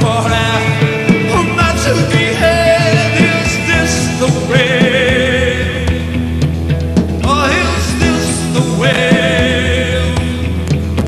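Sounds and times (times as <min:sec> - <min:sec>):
man singing: 0:00.0 - 0:06.4, 0:07.2 - 0:10.8
live rock band playing: 0:00.0 - 0:11.0.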